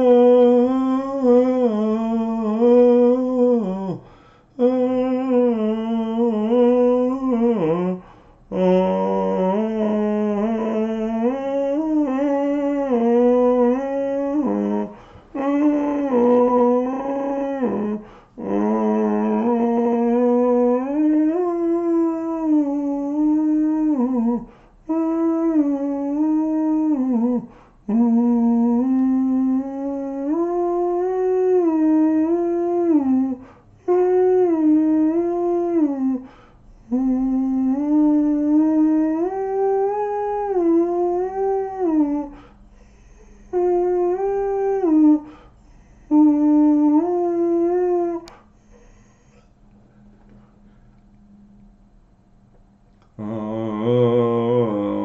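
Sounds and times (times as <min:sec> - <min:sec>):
man singing wordless melody: 0:00.0 - 0:42.4, 0:43.5 - 0:45.4, 0:46.1 - 0:48.4, 0:53.0 - 0:55.0.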